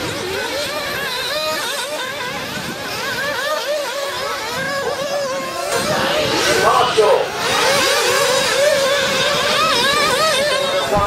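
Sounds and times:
nitro rc car engines screaming: 0:00.0 - 0:11.0.

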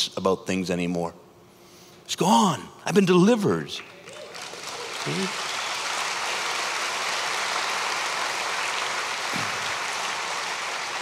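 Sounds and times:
audience applause: 0:03.8 - 0:11.0.

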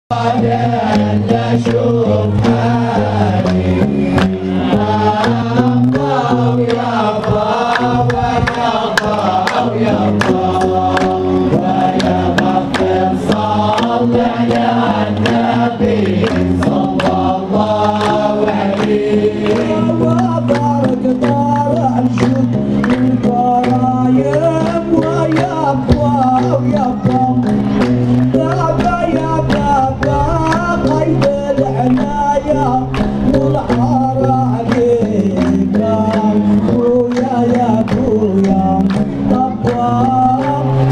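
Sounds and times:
low drone of voices: 0:00.1 - 0:40.9
male chorus chanting: 0:00.1 - 0:40.9
hand clapping: 0:00.4 - 0:40.9.

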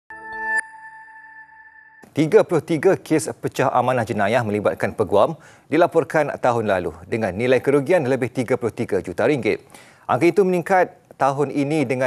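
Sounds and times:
synth chord: 0:00.1 - 0:02.0.

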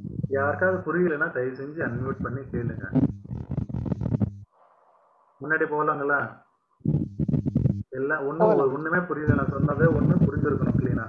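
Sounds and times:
man speaking: 0:00.3 - 0:03.0, 0:08.0 - 0:11.0.

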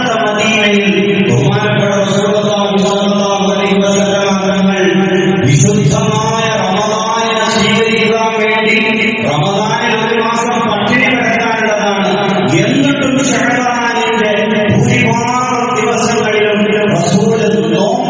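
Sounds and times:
man chanting: 0:00.0 - 0:18.0.

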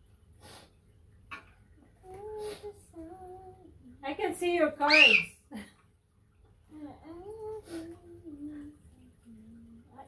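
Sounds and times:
child singing softly: 0:01.8 - 0:04.0, 0:06.6 - 0:10.0.

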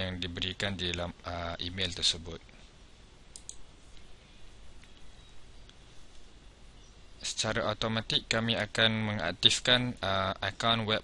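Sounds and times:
faint room hiss: 0:00.0 - 0:11.0
computer mouse clicks: 0:03.3 - 0:03.6.

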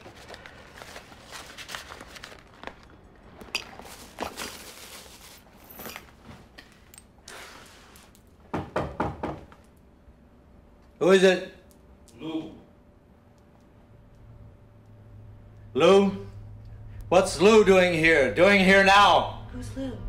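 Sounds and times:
handbag and clothing rustling: 0:00.0 - 0:06.6
knocks on a door: 0:08.5 - 0:09.5.

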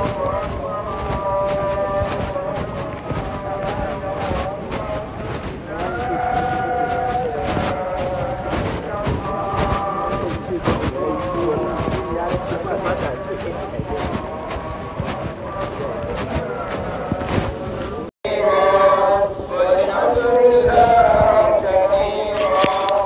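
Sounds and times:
voices chanting: 0:00.0 - 0:23.0.

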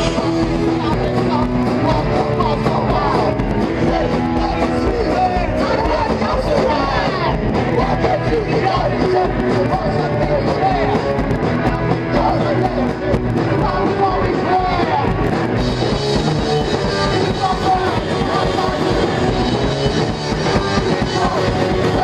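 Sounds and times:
punk rock band playing: 0:00.0 - 0:22.0.

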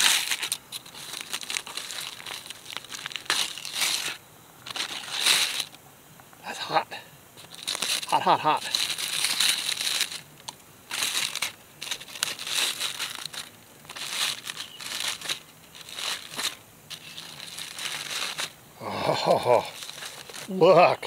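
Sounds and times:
aluminum foil crinkling: 0:00.0 - 0:05.8, 0:07.4 - 0:21.0.

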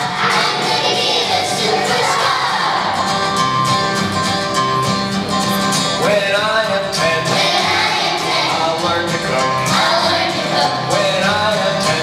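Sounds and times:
children's choir singing: 0:00.0 - 0:03.4, 0:06.2 - 0:12.0
instrumental accompaniment: 0:00.0 - 0:12.0.

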